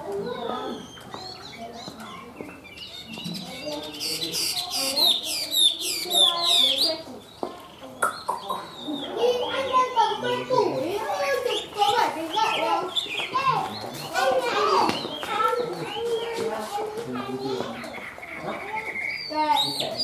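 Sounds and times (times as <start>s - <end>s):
bird singing whistled notes: 0.6s - 10.6s, 11.4s - 16.4s, 17.9s - 20.0s.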